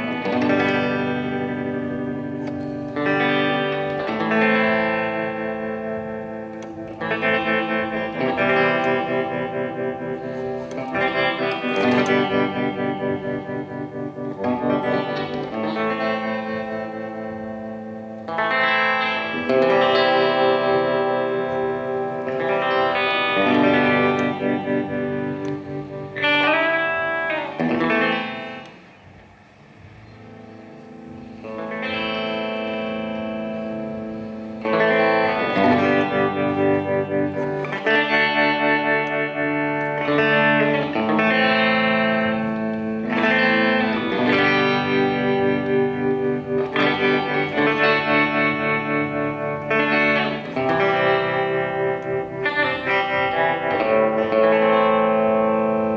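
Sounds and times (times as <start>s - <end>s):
electric guitar chords with vibrato: 0.0s - 55.9s.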